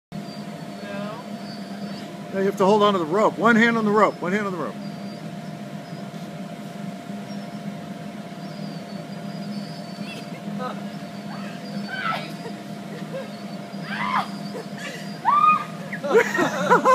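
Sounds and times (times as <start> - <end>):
machine hum: 0.1 - 16.9
short vocal cries: 10.0 - 12.6, 13.2 - 16.2.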